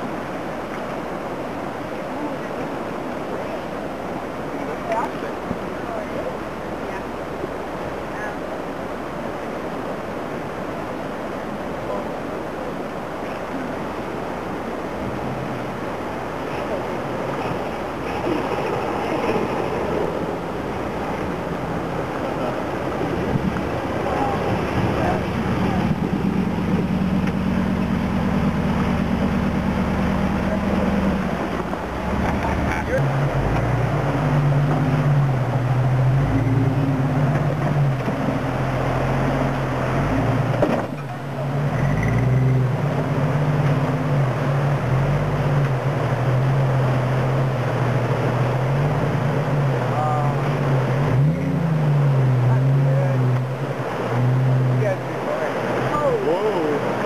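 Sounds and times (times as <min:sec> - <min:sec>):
off-road engines crawling: 0:00.0 - 0:57.0
rushing splashing water: 0:00.0 - 0:57.0
engine revving over rocks: 0:17.0 - 0:57.0.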